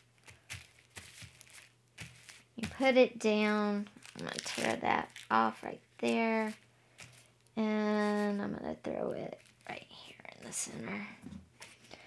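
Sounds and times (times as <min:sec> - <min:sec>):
tissue paper rustling: 0:00.0 - 0:08.4, 0:09.3 - 0:09.8.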